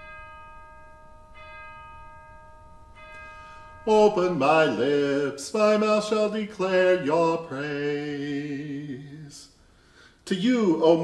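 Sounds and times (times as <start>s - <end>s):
bell ringing: 0.0s - 5.8s.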